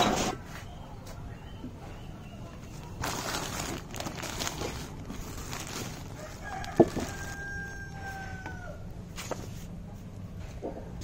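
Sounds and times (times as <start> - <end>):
plastic bag rustling: 2.7 - 8.4
rooster crowing: 5.8 - 9.0.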